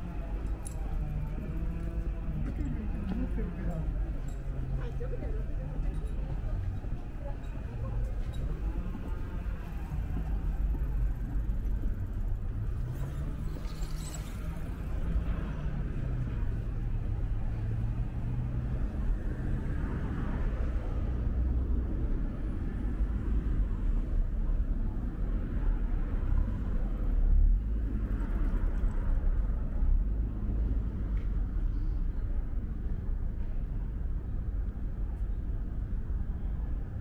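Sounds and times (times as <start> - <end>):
city road traffic rumble: 0.0 - 37.0.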